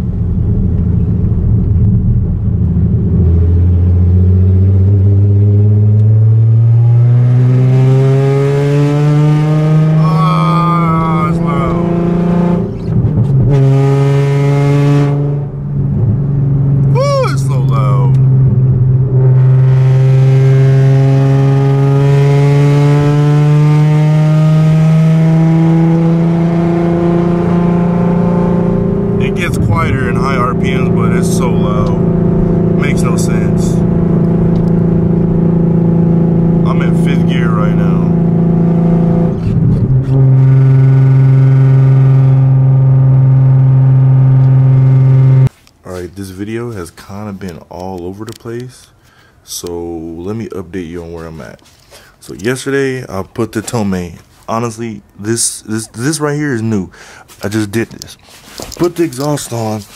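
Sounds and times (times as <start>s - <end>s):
car engine droning loudly: 0.0s - 45.5s.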